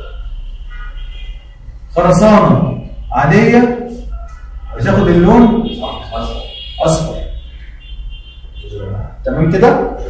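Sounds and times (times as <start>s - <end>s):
steady low hum: 1.6s - 10.0s
man speaking: 1.9s - 4.1s, 4.7s - 7.4s, 8.6s - 10.0s.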